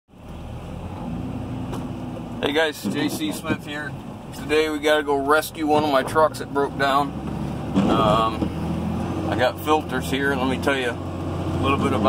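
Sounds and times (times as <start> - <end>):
engine and road rumble: 0.1 - 12.0.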